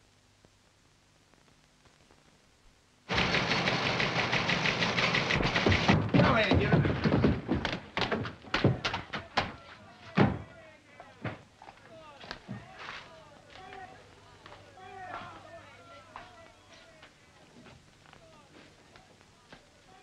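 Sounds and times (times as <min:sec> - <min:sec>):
commotion of voices and clatter: 0:03.2 - 0:20.0
knocks and thuds on wooden stairs: 0:05.4 - 0:09.5
faint voices: 0:06.2 - 0:20.0.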